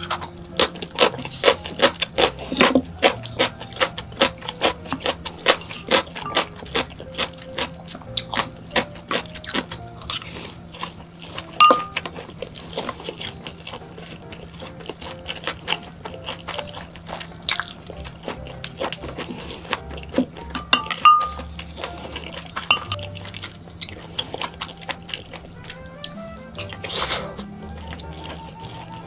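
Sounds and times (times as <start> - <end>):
chewing and mouth sounds: 0.0 - 29.0
quiet background music: 0.0 - 29.0
chopsticks clicking on ceramic bowls: 11.6 - 12.1, 19.7 - 25.2.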